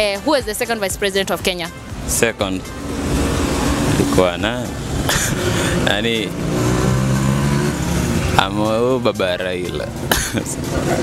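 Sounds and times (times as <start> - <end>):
vehicle engine running: 0.4 - 11.0.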